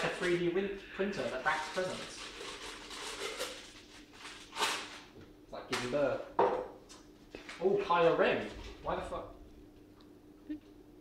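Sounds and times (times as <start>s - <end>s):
newspaper rustling: 1.2s - 5.1s.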